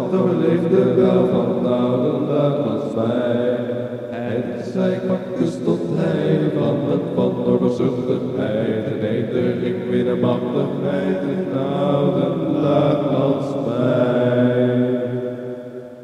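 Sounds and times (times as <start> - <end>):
droning wordless chant: 0.0 - 16.0.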